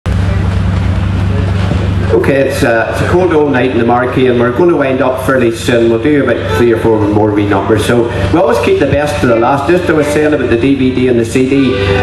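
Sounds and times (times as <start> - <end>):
faint voices: 0.1 - 12.0
loud low hum: 0.1 - 12.0.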